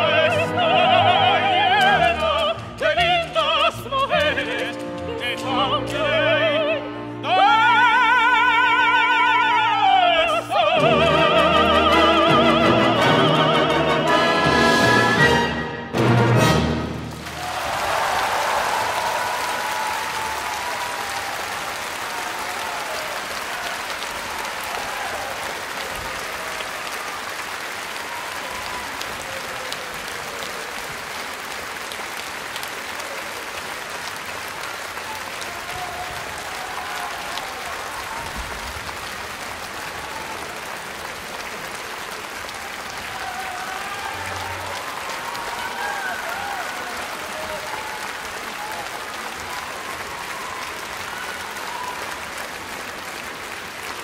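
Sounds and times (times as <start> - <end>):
audience applauding: 0.0 - 15.5, 16.3 - 54.0.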